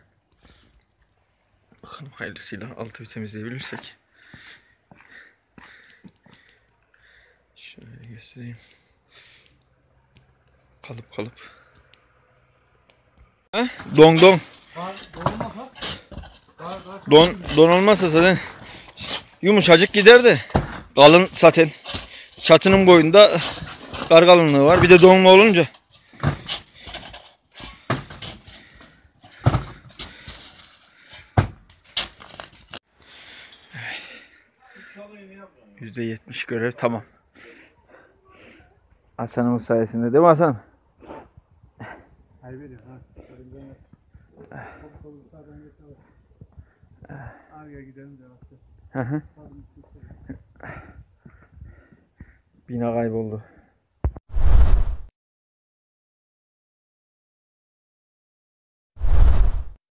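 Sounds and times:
metal shovel scraping frozen snow: 13.8s - 18.2s, 18.8s - 19.7s, 29.9s - 32.8s.

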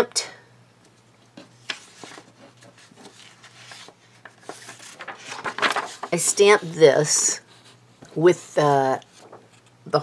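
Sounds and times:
low steady hum: 0.0s - 10.0s
paper rustling and tapping: 1.4s - 6.5s, 9.0s - 9.8s.

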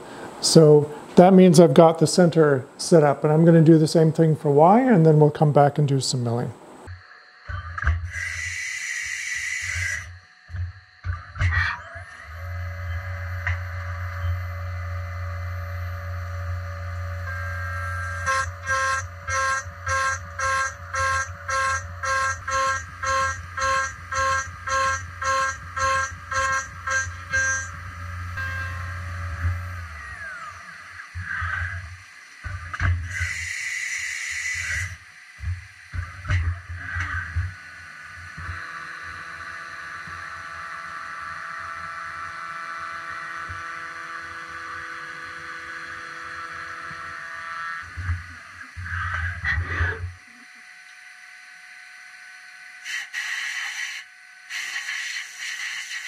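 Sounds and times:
cnc mill spindle whine: 6.8s - 56.0s
cutter pulsing into metal: 7.5s - 50.6s
coolant spray: 52.8s - 56.0s.

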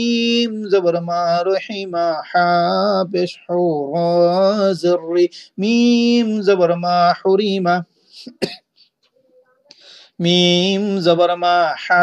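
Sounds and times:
man coughing: 8.2s - 8.7s
soft in-breath: 9.7s - 10.2s.

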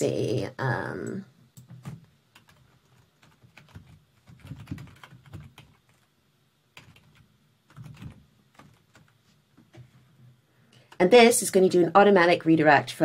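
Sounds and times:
typing on computer keyboard: 1.6s - 6.1s, 6.8s - 9.2s.

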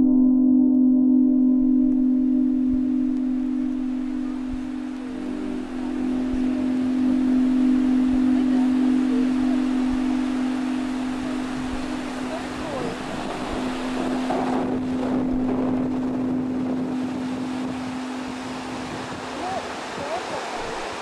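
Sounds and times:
low musical drone: 0.0s - 21.0s
wind: 1.3s - 21.0s
ocean surf: 2.8s - 21.0s.

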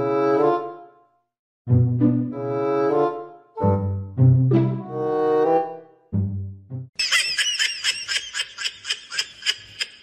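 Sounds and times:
high-pitched laughter: 7.0s - 10.0s.

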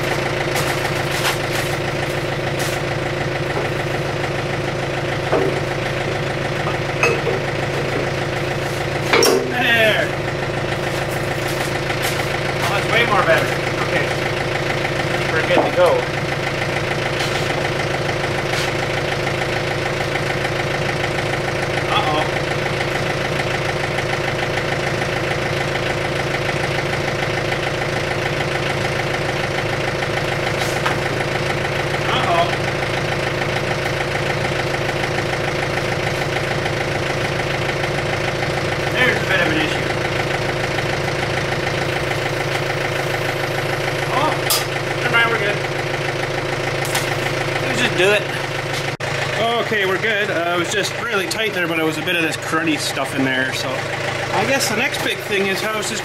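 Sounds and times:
diesel engine idling: 0.0s - 56.0s.

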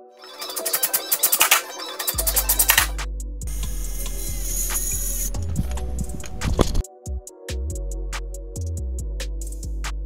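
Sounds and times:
circular saw cutting wood: 0.2s - 6.8s
background music with steady beat: 0.4s - 10.0s.

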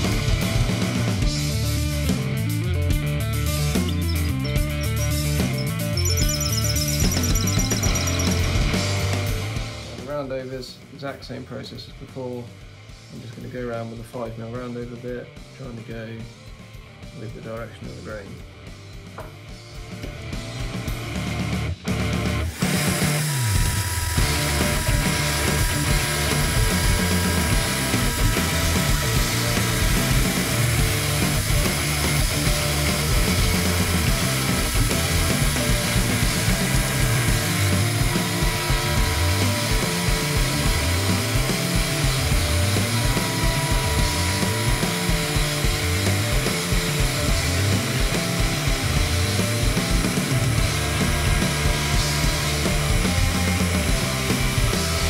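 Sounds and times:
background music with steady beat: 0.0s - 22.9s
router cutting wood: 22.3s - 55.0s.

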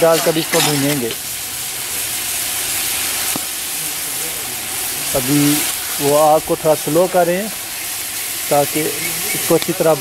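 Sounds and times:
meat sizzling in a pot: 0.0s - 10.0s.

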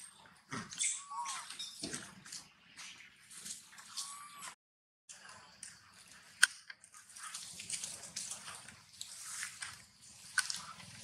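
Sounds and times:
rustling in dry leaves: 6.9s - 11.0s.

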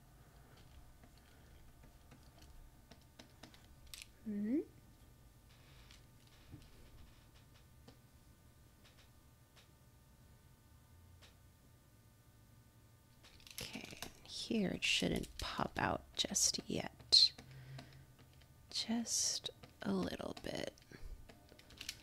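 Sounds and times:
person mumbling and whispering: 4.2s - 4.8s.

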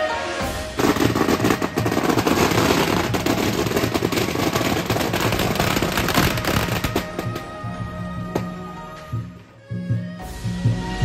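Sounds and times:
firecrackers bangs: 0.7s - 7.7s.

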